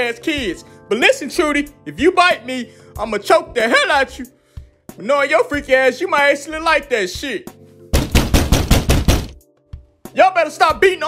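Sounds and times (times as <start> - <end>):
rapid pounding on a door: 7.9 - 9.4.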